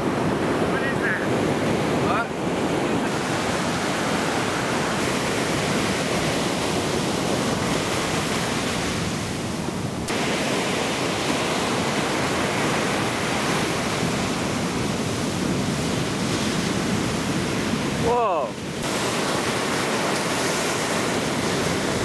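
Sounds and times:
ocean surf breaking: 0.0s - 22.0s.

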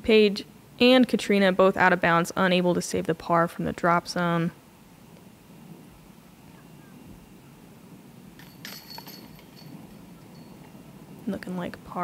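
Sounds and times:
chains rattling: 8.4s - 10.8s
disc striking metal chains: 8.4s - 10.8s.

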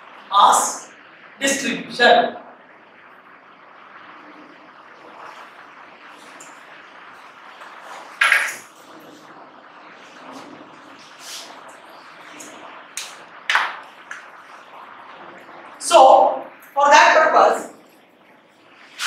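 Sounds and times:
low room hiss: 0.0s - 19.0s
marker pen on whiteboard: 7.6s - 8.8s, 10.3s - 11.5s.

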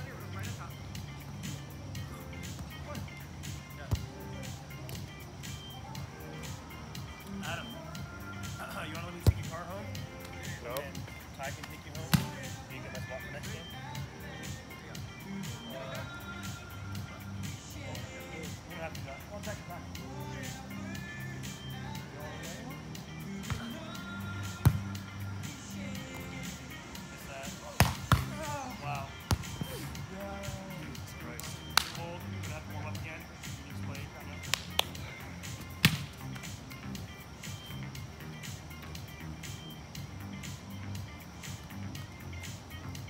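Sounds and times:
voices: 0.0s - 42.5s
background music with bass beat: 0.0s - 43.0s
volleyball slaps: 12.1s - 12.3s, 27.8s - 28.4s, 31.4s - 32.0s, 35.8s - 36.5s.

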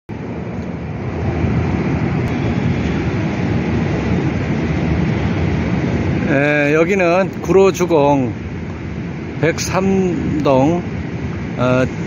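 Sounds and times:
low vehicle rumble: 0.1s - 12.0s.

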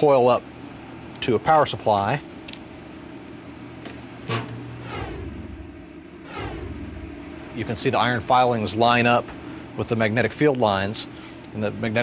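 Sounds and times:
low hum: 2.9s - 9.9s.

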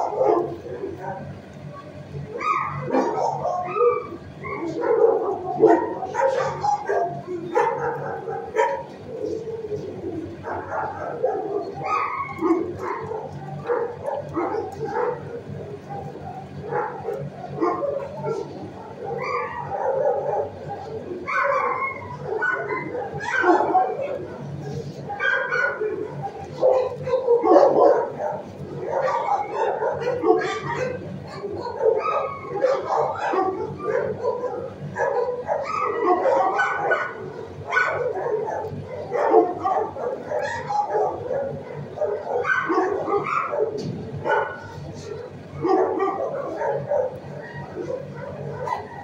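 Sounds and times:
dogs barking and yipping: 0.0s - 49.0s
steady low hum: 0.0s - 49.0s.

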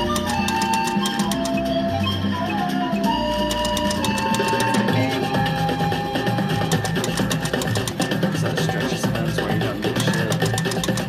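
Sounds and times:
rhythmic percussive slot machine music: 0.0s - 11.0s.

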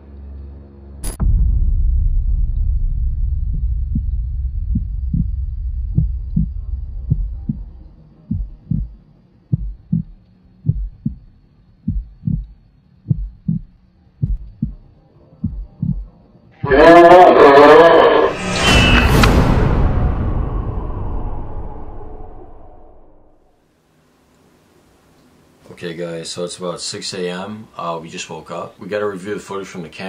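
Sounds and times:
low droning rumble: 1.0s - 16.1s, 18.3s - 23.4s
slow heartbeat thuds: 1.2s - 16.1s.

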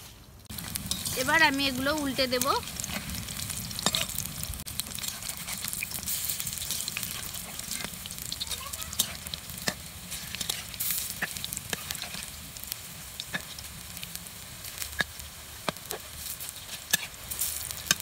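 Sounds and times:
fritters sizzling in hot oil: 0.4s - 18.0s
metal spatula scraping a wok: 0.6s - 1.4s, 2.7s - 4.2s, 4.9s - 12.4s, 14.8s - 18.0s.

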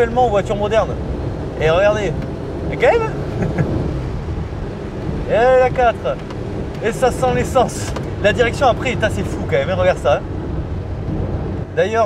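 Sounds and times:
car engine rumble: 0.0s - 12.0s
road noise: 0.0s - 12.0s.

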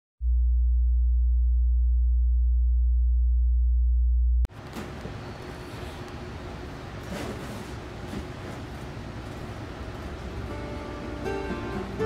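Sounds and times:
very low pure tone: 0.2s - 4.5s.

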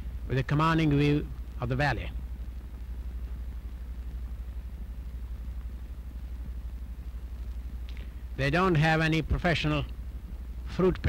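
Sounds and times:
film soundtrack hum and hiss: 0.0s - 11.0s.

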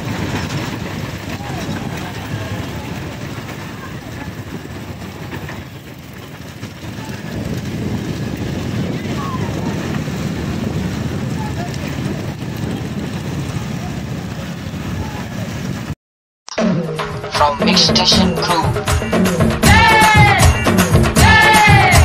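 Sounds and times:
motorbike engines running: 0.0s - 16.0s
wind rushing over microphone: 0.0s - 16.0s
voices: 1.0s - 5.7s, 6.8s - 15.7s, 17.3s - 19.0s.

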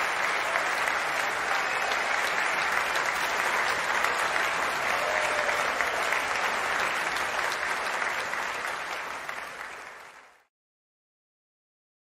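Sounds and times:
applause: 0.0s - 10.5s.

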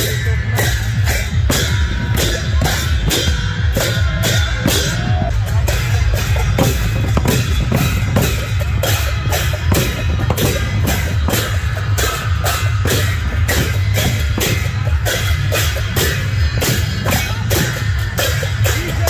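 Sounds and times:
barrel drum beat: 0.0s - 19.0s
brass hand cymbals clashing: 0.0s - 19.0s.

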